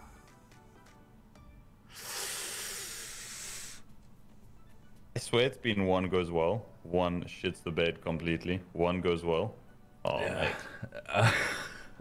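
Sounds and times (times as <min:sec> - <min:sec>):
game music: 0:00.0 - 0:02.0, 0:04.3 - 0:05.3.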